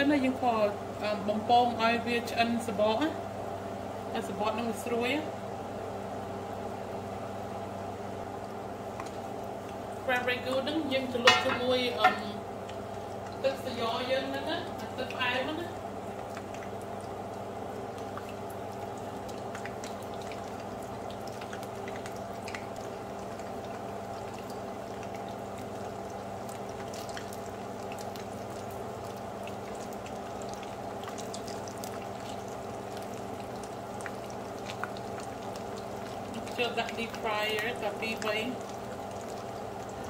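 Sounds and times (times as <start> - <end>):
steady low hum: 0.0 - 40.0
oil crackles and pops: 8.3 - 13.6, 14.2 - 40.0
food sizzling in frying oil: 9.8 - 40.0.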